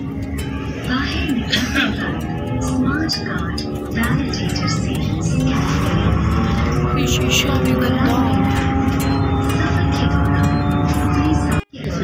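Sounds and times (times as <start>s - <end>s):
steady held tones: 0.0s - 11.8s
vehicle rumble from inside: 0.0s - 12.0s.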